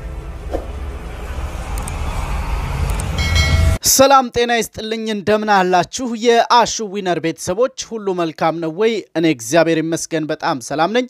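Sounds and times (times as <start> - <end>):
deep rumble: 0.0 - 3.8
high ringing tone: 2.1 - 3.8
voice: 3.8 - 11.0.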